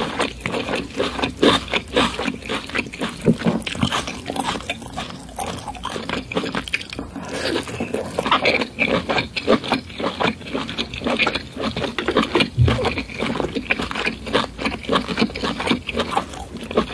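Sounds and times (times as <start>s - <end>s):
close chewing mouth smacks: 0.0s - 16.9s.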